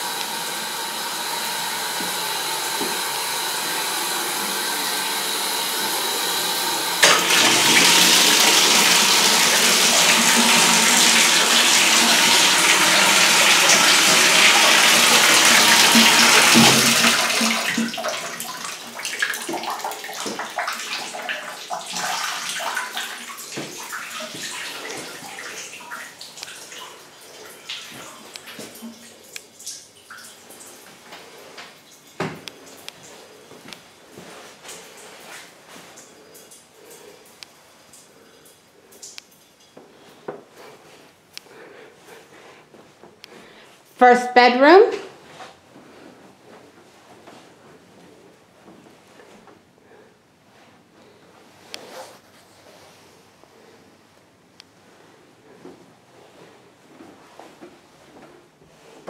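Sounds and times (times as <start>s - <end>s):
water running from a tap: 0.0s - 33.2s
water trickling and dripping: 15.6s - 40.1s.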